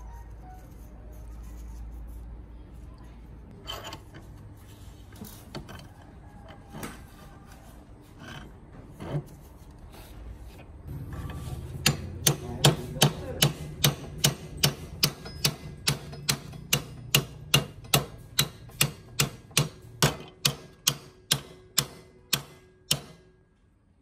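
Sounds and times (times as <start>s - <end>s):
sharp metallic knocks: 11.3s - 23.4s.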